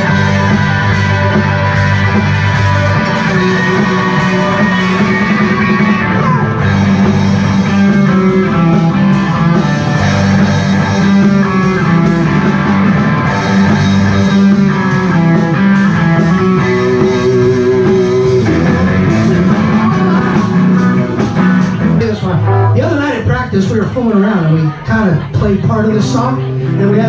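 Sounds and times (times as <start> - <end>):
bass: 0.0 - 27.0
drum kit: 0.0 - 27.0
electric guitars: 0.0 - 27.0.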